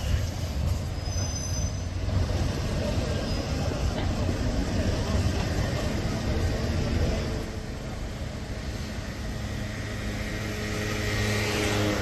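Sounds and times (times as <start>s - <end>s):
tram wheel squeal: 0.0s - 10.6s
city traffic rumble: 0.0s - 12.0s
tram running on track: 0.0s - 12.0s.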